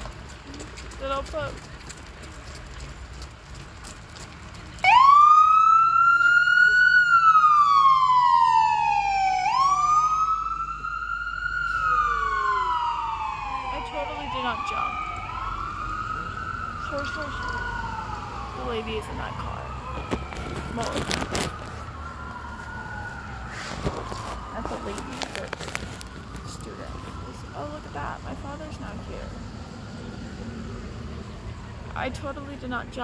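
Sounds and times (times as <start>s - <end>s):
emergency vehicle sirens wailing: 4.4s - 33.0s.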